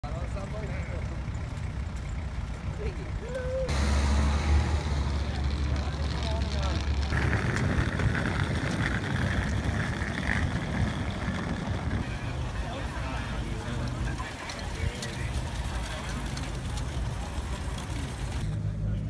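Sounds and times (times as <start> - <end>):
street noise: 0.0 - 19.0
vehicle engine rumbling: 0.0 - 19.0
faint voices: 5.1 - 19.0.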